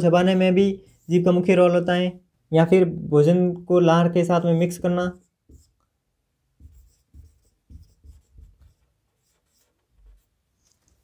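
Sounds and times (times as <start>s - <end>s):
marker pen on whiteboard: 0.0s - 1.9s, 4.4s - 11.0s.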